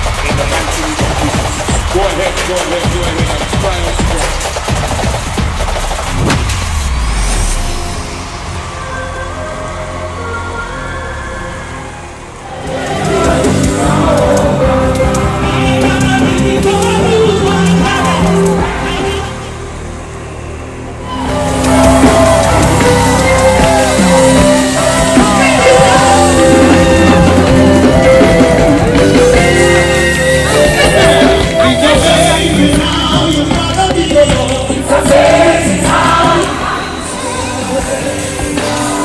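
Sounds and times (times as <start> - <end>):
crowd singing a hymn: 11.6 - 19.6, 21.1 - 39.0
live band playing: 12.7 - 19.4, 21.1 - 39.0.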